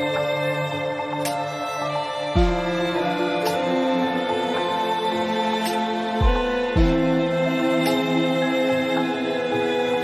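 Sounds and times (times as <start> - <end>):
sustained chord music: 0.0 - 10.0.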